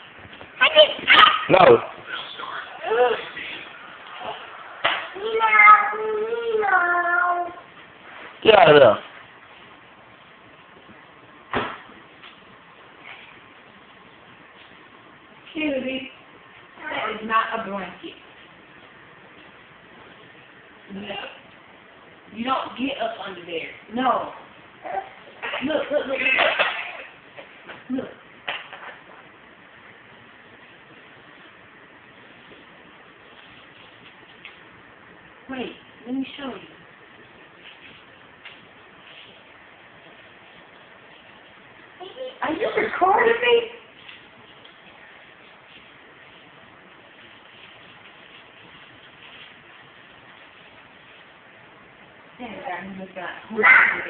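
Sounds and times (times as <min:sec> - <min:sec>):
low steady hiss: 0:00.0 - 0:54.0
sharp knock: 0:11.5 - 0:11.8
dog barking: 0:53.6 - 0:54.0.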